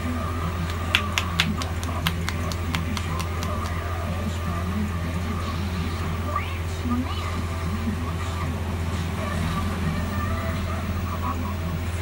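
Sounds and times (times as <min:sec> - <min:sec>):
steady low hum: 0:00.0 - 0:12.0
hands patting on scalp: 0:00.6 - 0:03.9.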